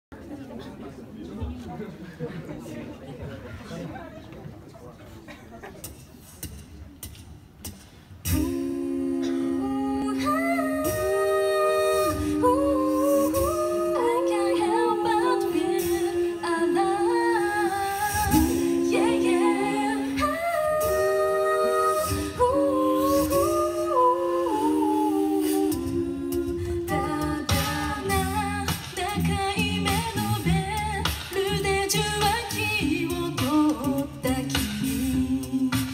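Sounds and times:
a cappella group singing: 8.2s - 35.9s.

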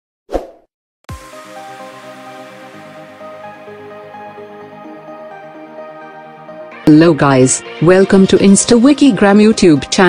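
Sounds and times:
pop and swoosh sound effect: 0.3s - 0.7s
electronic background music: 1.1s - 10.0s.

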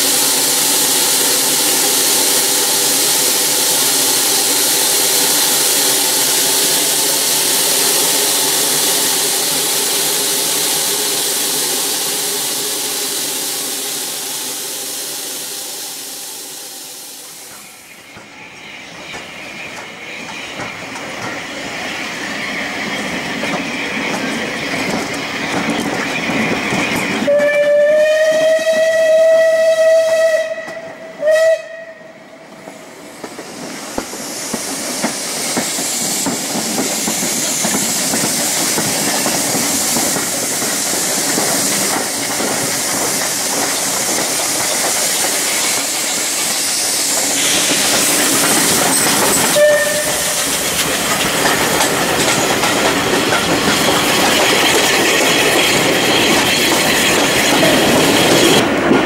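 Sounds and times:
steam hiss and exhaust: 0.0s - 59.0s
steam locomotive whistle: 27.1s - 32.4s, 49.0s - 50.7s.

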